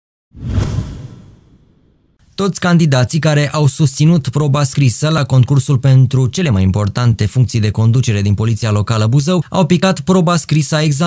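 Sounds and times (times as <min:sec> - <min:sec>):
whoosh sound effect: 0:00.3 - 0:02.2
low rumble: 0:00.4 - 0:02.2.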